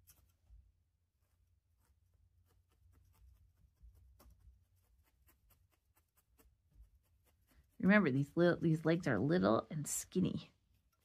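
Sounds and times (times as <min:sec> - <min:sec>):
felting needles poking wool: 0:00.0 - 0:11.0.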